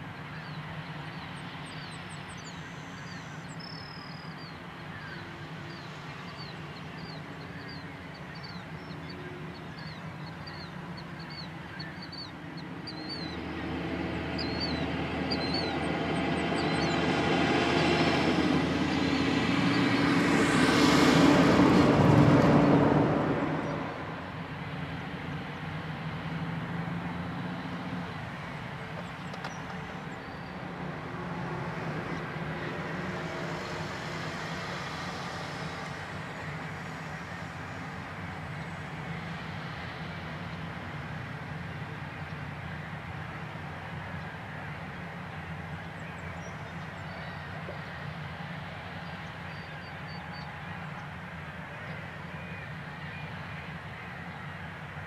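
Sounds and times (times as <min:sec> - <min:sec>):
diesel engine running: 0:11.6 - 0:55.0.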